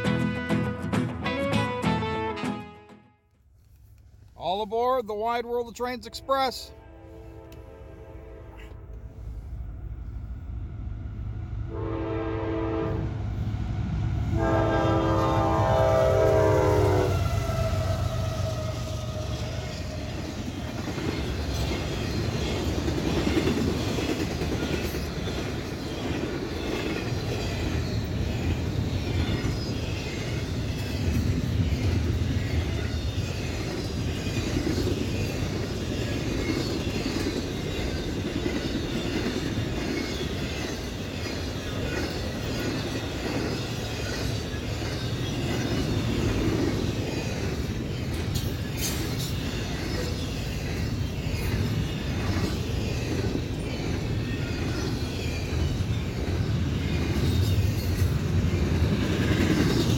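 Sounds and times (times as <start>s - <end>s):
freight train rumble: 3.6s - 59.9s
train air horn blasts: 6.0s - 9.3s, 11.7s - 13.1s, 14.3s - 18.8s
train wheels clickety-clack: 17.2s - 59.9s.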